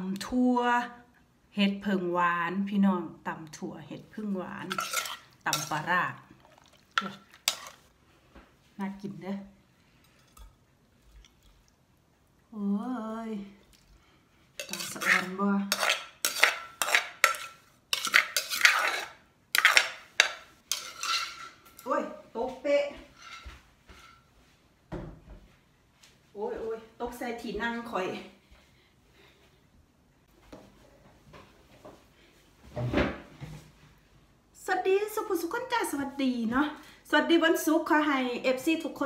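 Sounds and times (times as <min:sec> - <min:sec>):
spoon scraping earthenware mortar: 0:04.6 - 0:07.8, 0:14.6 - 0:21.6
chair scraping and knocking: 0:32.7 - 0:33.7.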